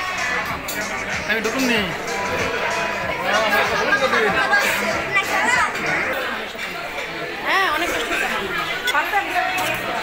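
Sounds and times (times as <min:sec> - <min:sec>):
people talking and chattering: 0:00.0 - 0:10.0.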